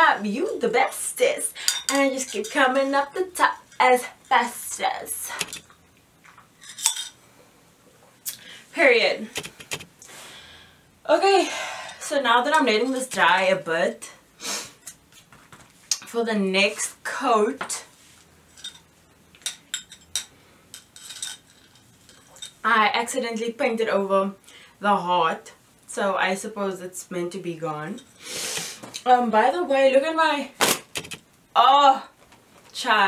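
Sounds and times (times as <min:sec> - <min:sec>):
glass clinking: 0:01.7 - 0:02.6, 0:06.6 - 0:07.2, 0:18.6 - 0:22.6.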